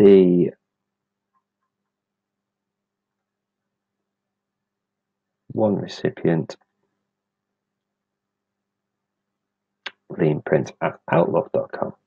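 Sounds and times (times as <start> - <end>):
faint low hum: 9.9 - 11.9.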